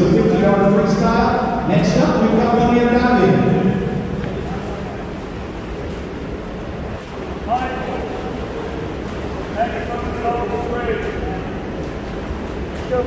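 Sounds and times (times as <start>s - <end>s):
pool hall noise: 0.0s - 13.0s.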